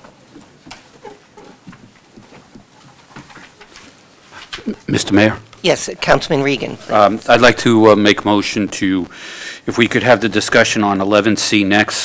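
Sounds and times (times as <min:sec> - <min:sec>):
rustles and knocks: 0:00.0 - 0:04.7
man speaking over microphone: 0:04.8 - 0:05.4, 0:06.8 - 0:12.0.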